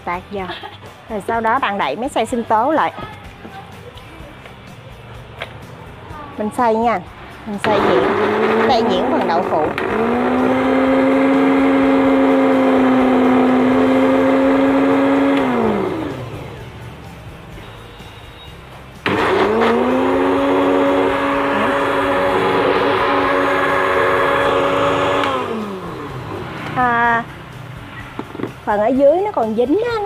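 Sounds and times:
blender motor whine: 7.6 - 16.6, 19.0 - 26.4.

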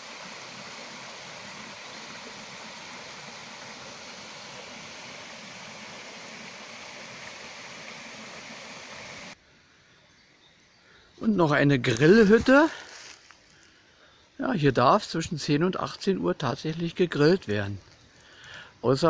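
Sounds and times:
small waterfall rushing: 0.0 - 9.4.

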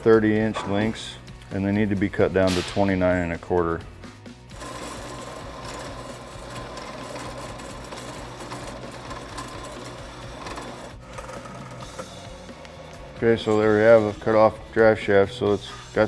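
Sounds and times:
bandsaw cutting metal: 4.5 - 14.4.

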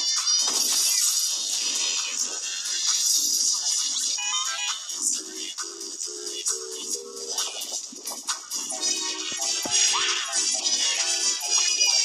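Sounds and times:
distorted cartoon theme music: 0.0 - 12.0.

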